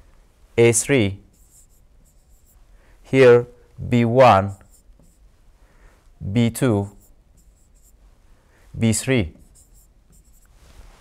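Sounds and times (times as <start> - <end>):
stylus scratching on screen: 1.3 - 2.7, 4.4 - 5.3, 6.8 - 8.0, 8.9 - 11.0.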